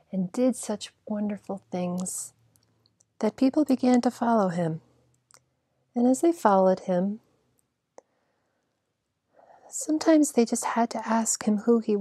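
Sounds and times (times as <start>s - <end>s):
woman speaking: 0.0s - 2.3s, 3.2s - 4.8s, 6.0s - 7.2s, 9.7s - 12.0s.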